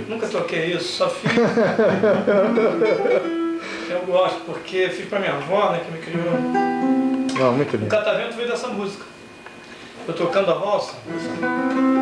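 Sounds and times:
man talking: 3.9s - 6.4s, 7.3s - 9.1s, 10.0s - 11.4s
fingerpicked classical guitar: 6.1s - 8.0s, 11.1s - 12.0s.

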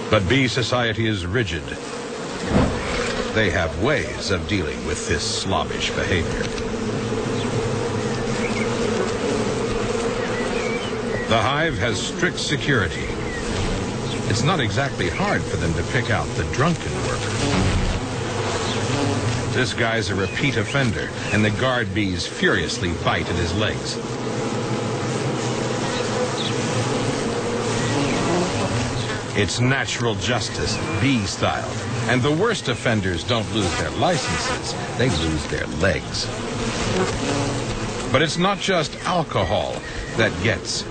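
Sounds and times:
bees buzzing: 0.0s - 40.9s.

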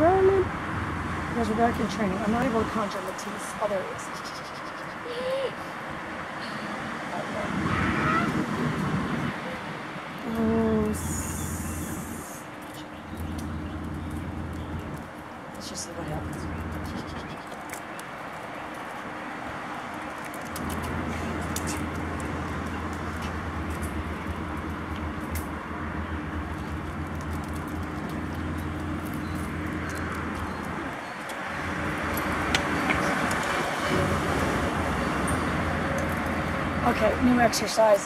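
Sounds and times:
low engine hum: 0.0s - 5.4s, 6.4s - 38.0s
road traffic noise: 0.0s - 38.0s.

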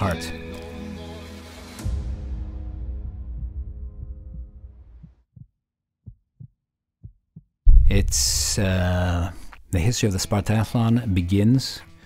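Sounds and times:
faint heartbeat thumps: 3.0s - 8.6s.

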